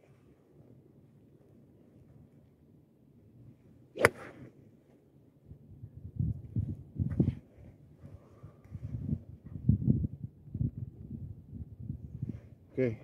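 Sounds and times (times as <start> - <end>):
golf club striking ball: 4.0 - 4.4.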